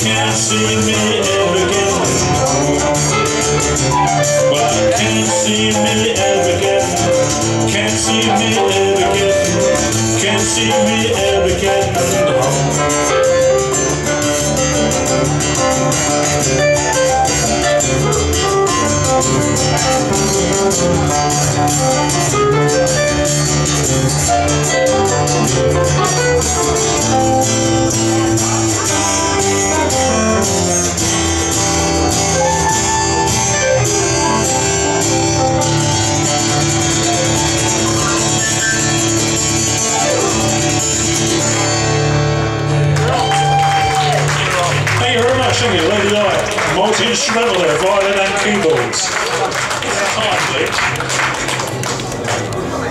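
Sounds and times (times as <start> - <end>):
keyboard: 0.0 - 43.2
acoustic guitar strumming: 0.0 - 52.8.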